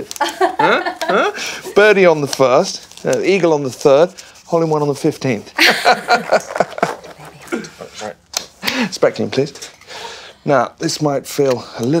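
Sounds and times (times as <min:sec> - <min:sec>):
man speaking: 0:00.6 - 0:05.6, 0:07.6 - 0:09.8
woman speaking: 0:06.9 - 0:07.9.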